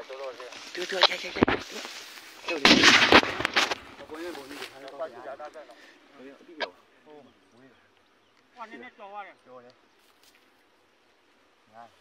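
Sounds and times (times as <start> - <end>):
gunfire burst: 2.5 - 3.8
sharp gunshot cracks: 2.5 - 3.8.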